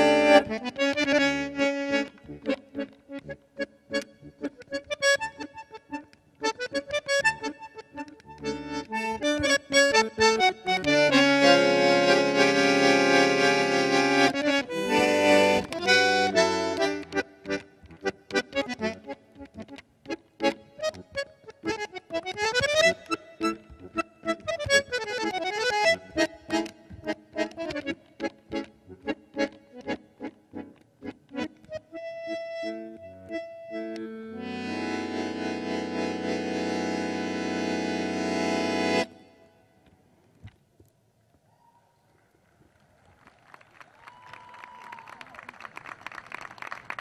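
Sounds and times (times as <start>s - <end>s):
bandoneon playing: 0.0s - 19.7s, 20.4s - 30.6s, 31.4s - 39.4s.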